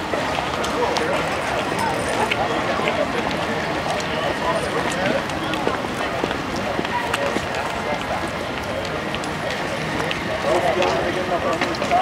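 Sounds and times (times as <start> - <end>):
crowd chatter: 0.0 - 12.0
footsteps on paved ground: 0.0 - 12.0.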